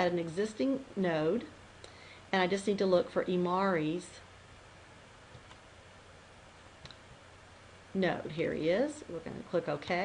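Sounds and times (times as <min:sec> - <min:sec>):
low hiss of room noise: 0:00.0 - 0:10.0.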